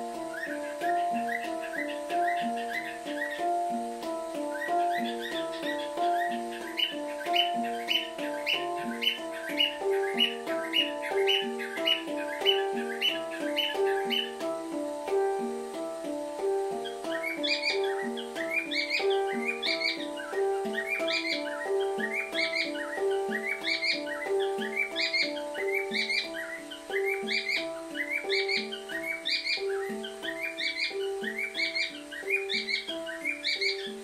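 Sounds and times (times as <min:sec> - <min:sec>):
handpan ringing notes: 0:00.0 - 0:34.0
high bird-like chirps: 0:00.0 - 0:34.0.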